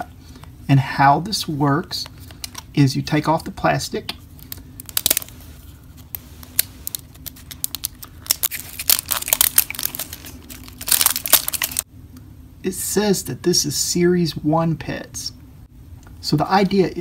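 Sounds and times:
plastic wrapping crinkling: 4.4s - 11.8s.

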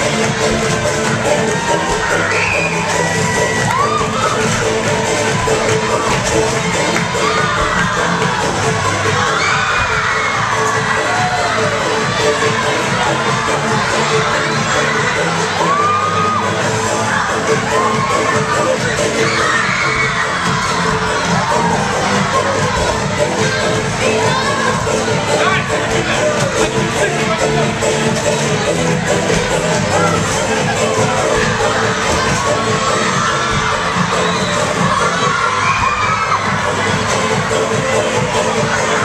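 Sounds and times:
children shouting and cheering: 0.0s - 27.2s, 28.5s - 39.0s.

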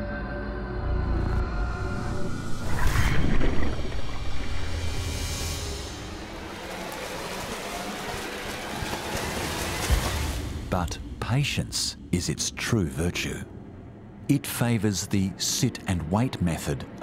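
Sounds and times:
background music: 0.0s - 17.0s
water rushing and splashing: 2.5s - 11.7s.

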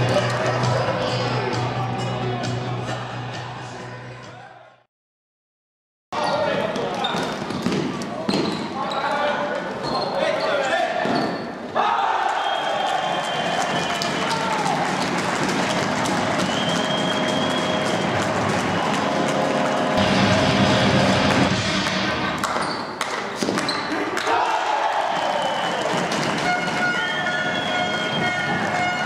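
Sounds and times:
crowd cheering: 11.8s - 22.6s, 24.0s - 29.0s.

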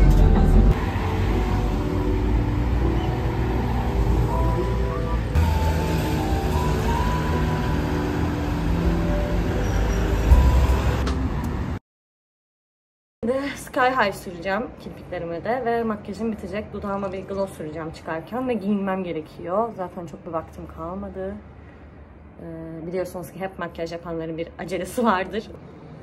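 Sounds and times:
background music with held notes: 0.0s - 11.2s
bus engine rumble: 0.0s - 11.8s.

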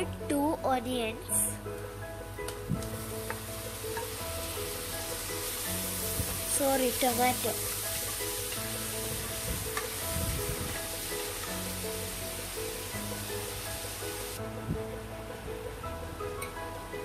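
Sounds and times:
background music with held notes: 0.0s - 17.0s
onions sizzling in oil: 2.6s - 14.4s.

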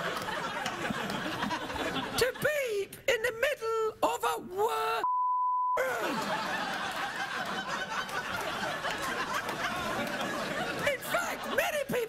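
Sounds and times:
high-pitched comic speech: 2.2s - 5.1s
censor bleep tone: 5.0s - 5.8s.

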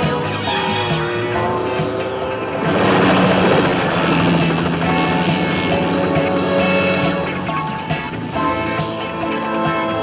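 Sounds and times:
film score music: 0.0s - 10.0s
helicopter rotor chopping: 0.0s - 10.0s.

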